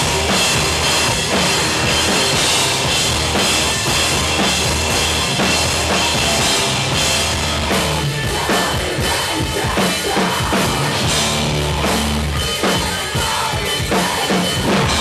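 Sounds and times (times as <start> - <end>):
drum kit pounding: 0.0 - 15.0
heavy rock band playing: 0.0 - 15.0.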